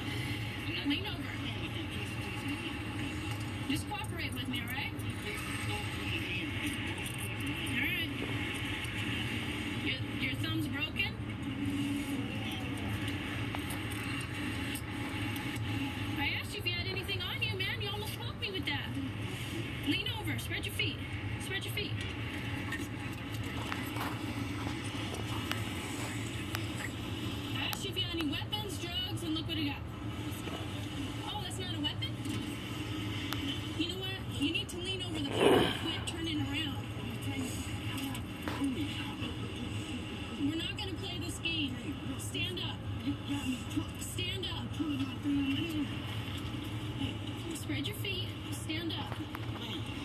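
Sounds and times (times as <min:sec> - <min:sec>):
indistinct television voices: 0:00.0 - 0:50.0
steady low hum: 0:00.0 - 0:50.0
indistinct speech: 0:33.8 - 0:45.8.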